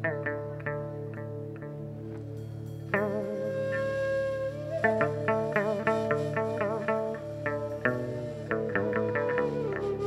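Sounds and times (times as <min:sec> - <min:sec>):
plucked string instrument: 0:00.0 - 0:10.0
sustained low accompaniment: 0:00.0 - 0:10.0.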